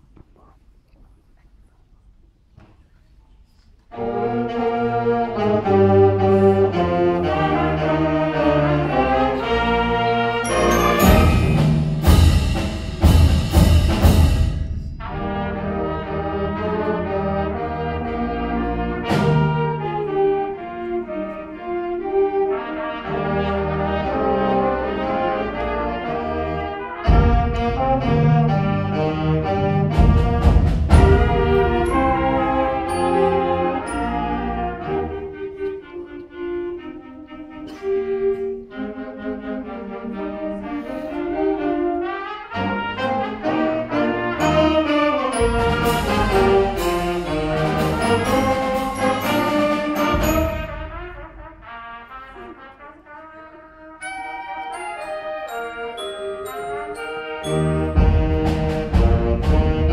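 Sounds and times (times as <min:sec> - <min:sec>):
concert band playing carols: 0:03.9 - 0:59.9
sharp percussion hits: 0:10.4 - 0:15.8, 0:30.0 - 0:34.1, 0:45.3 - 0:51.7.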